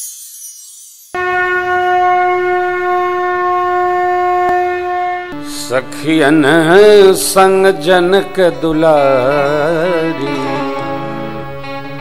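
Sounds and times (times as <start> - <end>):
conch shell blown: 1.2 - 7.9, 9.1 - 12.0.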